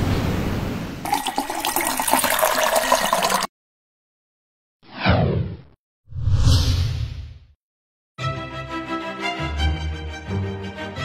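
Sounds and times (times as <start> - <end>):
water gushing: 1.0 - 3.5.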